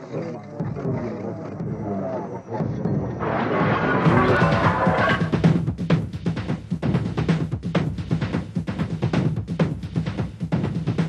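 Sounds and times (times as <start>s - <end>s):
loud noisy sound: 3.2s - 5.5s.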